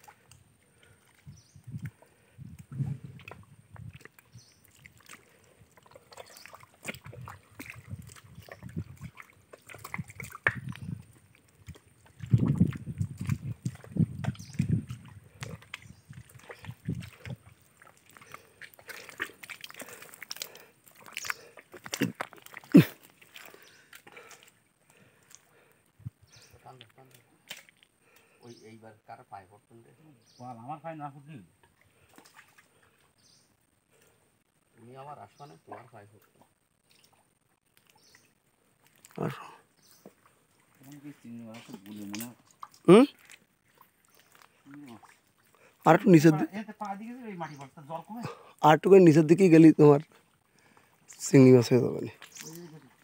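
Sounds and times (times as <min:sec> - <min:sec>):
wet clicks and crackles: 0:02.6 - 0:25.8, 0:26.8 - 0:28.4, 0:36.8 - 0:39.3, 0:40.0 - 0:45.8, 0:52.1 - 0:52.7
footsteps squelching in mud: 0:03.0 - 0:25.7, 0:36.8 - 0:46.3, 0:50.0 - 0:53.0.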